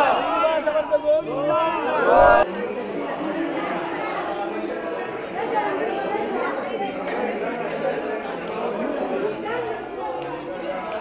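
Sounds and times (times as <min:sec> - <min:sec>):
crowd talking in echoing hall: 0:00.0 - 0:11.0.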